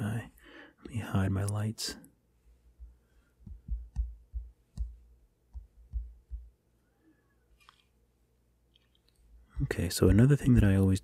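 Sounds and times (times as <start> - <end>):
stylus tapping on glass screen: 2.8 - 6.5.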